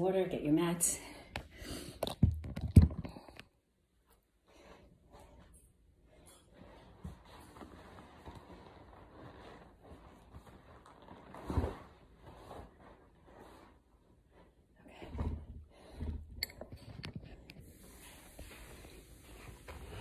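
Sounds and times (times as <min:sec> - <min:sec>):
rustling: 0:06.1 - 0:16.0.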